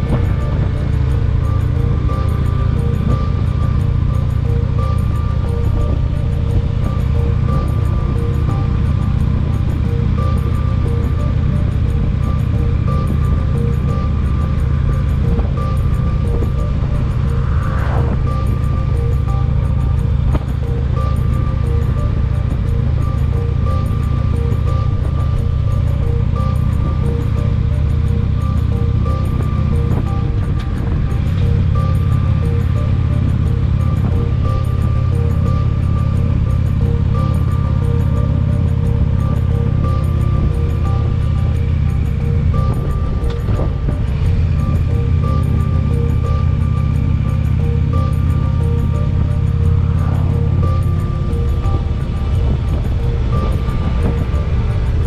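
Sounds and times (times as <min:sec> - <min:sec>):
motorcycle engine drone: 0:00.0 - 0:55.0
music playing: 0:00.0 - 0:55.0
wind rushing over microphone: 0:00.0 - 0:55.0.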